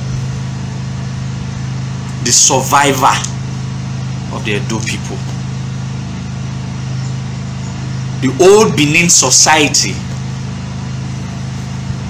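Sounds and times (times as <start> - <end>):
machine motor hum with buzzing: 0.0 - 12.0.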